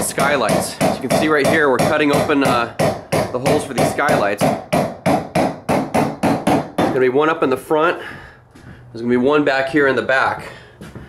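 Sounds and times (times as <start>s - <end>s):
hand tool striking ceiling panel: 0.0s - 7.0s.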